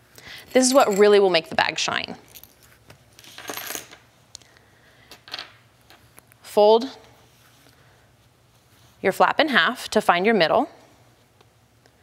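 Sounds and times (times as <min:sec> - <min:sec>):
metal hardware rustle and clink: 0:00.4 - 0:04.0.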